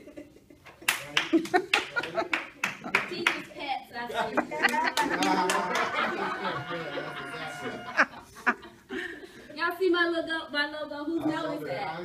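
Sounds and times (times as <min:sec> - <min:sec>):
sharp hand claps: 0:00.8 - 0:03.5, 0:04.7 - 0:06.1
voices: 0:03.1 - 0:08.7.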